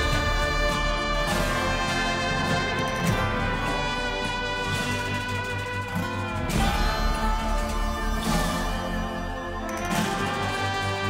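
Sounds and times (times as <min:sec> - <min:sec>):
instrumental music with brass: 0:00.0 - 0:11.0.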